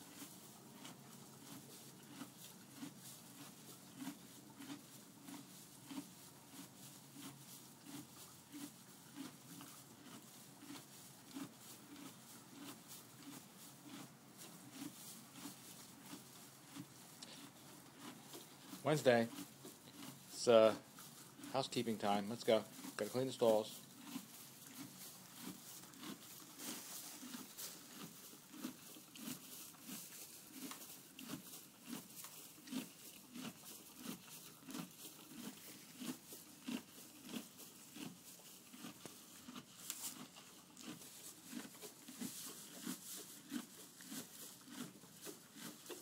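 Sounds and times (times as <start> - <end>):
horse munching hay: 0.0 - 46.0.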